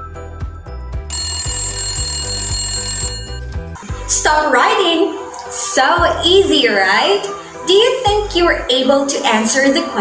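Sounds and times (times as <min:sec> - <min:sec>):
background music with beat: 0:00.0 - 0:08.5
timer alarm ringing: 0:01.1 - 0:03.8.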